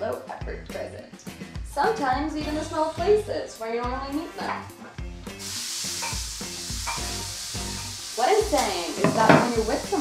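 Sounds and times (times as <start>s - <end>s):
vegetables sizzling in frying pan: 5.3s - 10.0s.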